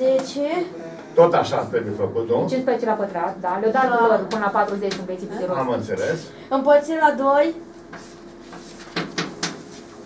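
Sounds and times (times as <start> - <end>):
chalk knocking on blackboard: 7.9 - 9.8.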